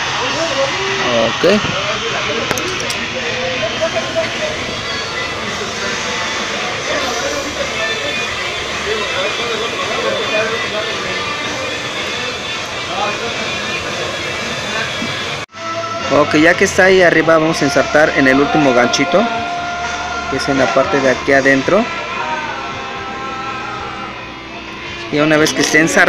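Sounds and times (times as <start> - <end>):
faint indistinct voices: 0.0 - 26.0
music: 0.0 - 26.0
hiss-like background noise: 3.9 - 15.4.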